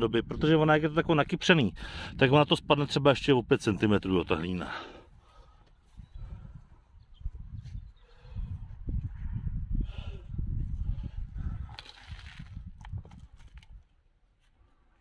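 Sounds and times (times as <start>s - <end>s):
wind buffeting microphone: 0.0s - 4.3s, 5.1s - 13.9s.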